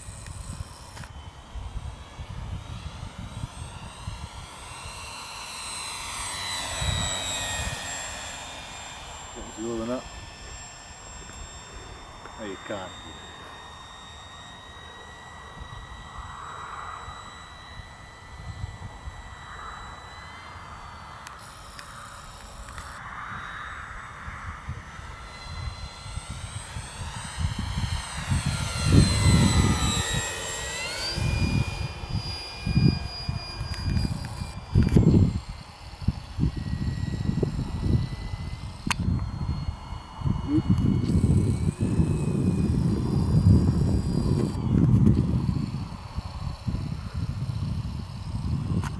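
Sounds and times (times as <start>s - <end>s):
wind rumbling on microphone: 0.0s - 13.6s, 15.2s - 48.9s
model plane motor whining: 0.0s - 48.9s.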